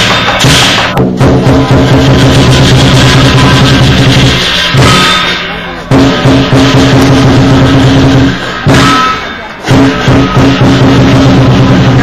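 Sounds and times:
barrel drum beaten fast: 0.0 - 12.0
metallic cymbal wash: 1.7 - 12.0.

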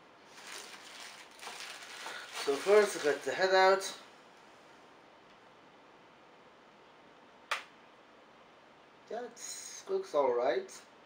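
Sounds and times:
sharp plastic click: 7.5 - 7.7.

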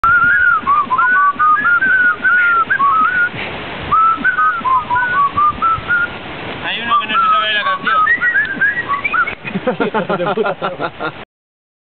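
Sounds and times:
person whistling a tune: 0.0 - 6.1, 6.9 - 9.5.

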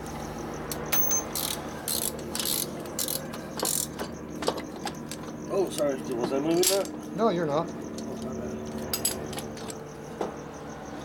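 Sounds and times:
ratchet wrench clicking: 0.7 - 5.9.

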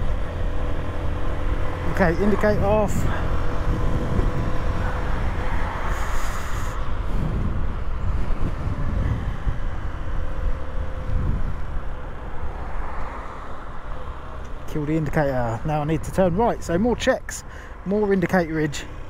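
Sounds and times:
wind rumble on microphone: 0.0 - 14.6.

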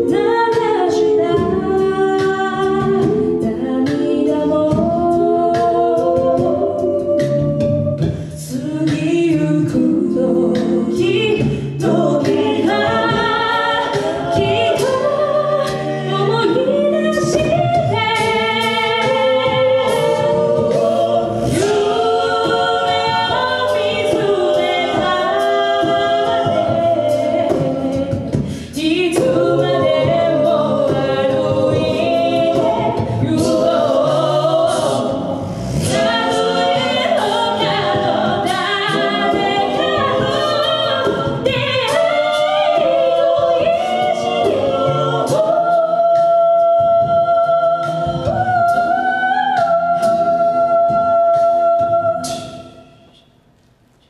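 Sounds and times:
a cappella group singing: 0.0 - 53.4.

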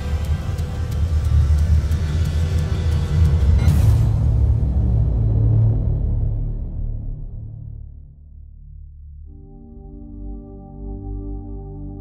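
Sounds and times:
deep rumbling low drone: 0.0 - 12.0.

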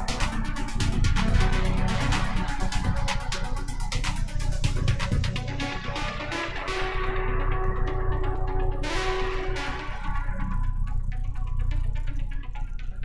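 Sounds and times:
electronic dance music: 0.0 - 13.0.

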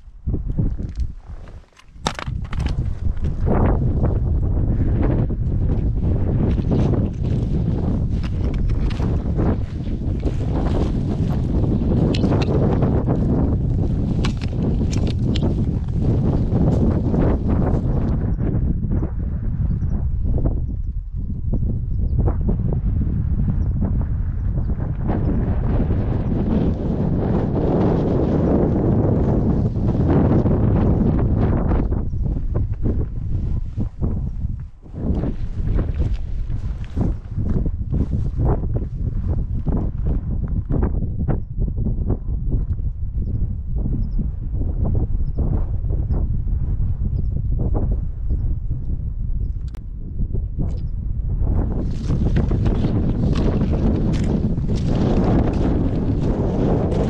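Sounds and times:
wind buffeting microphone: 0.0 - 57.0
footsteps on trail: 5.6 - 17.9, 32.6 - 39.9, 51.8 - 57.0.

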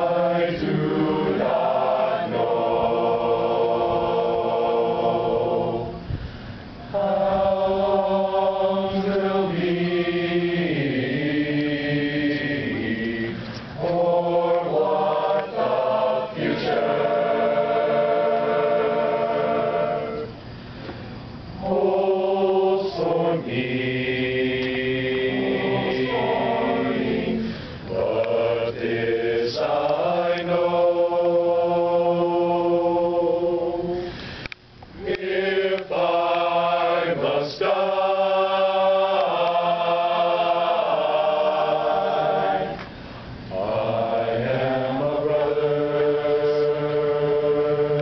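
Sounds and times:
group singing hymn a cappella: 0.0 - 48.0.

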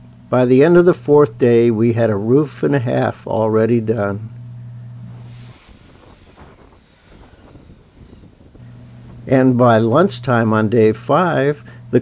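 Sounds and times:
distant aircraft whine: 0.0 - 12.0.

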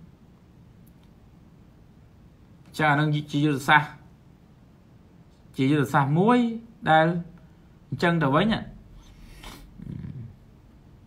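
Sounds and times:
man humming closed-mouth: 9.4 - 10.4.

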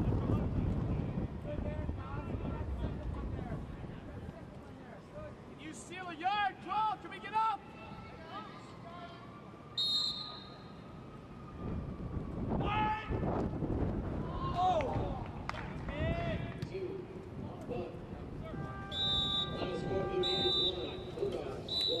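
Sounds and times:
referee's whistle: 9.8 - 10.8, 18.7 - 22.0.

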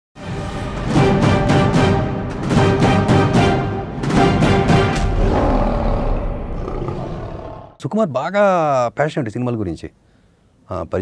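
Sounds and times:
lion roar sound effect: 5.0 - 7.8
man speaking: 10.7 - 11.0.

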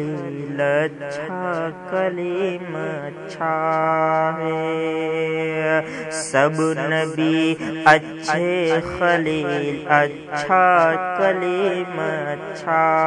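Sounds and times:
man chanting devotional song: 0.0 - 13.0.

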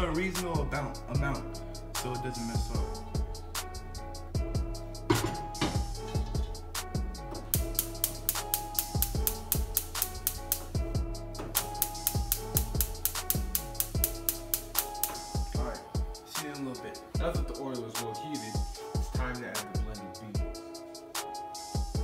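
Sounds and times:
held bass line: 0.0 - 15.8
regular hi-hat: 0.0 - 22.0.

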